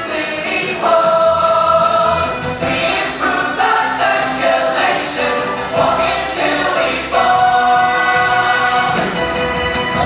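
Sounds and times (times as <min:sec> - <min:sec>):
dance music: 0:00.0 - 0:10.0.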